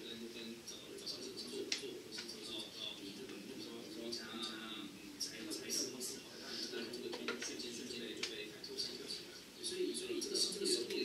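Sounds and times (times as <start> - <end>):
man talking over loudspeakers: 0.0 - 11.0.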